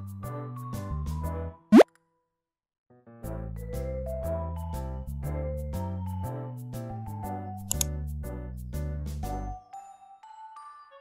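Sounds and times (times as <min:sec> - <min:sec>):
light background music: 0:03.2 - 0:11.0.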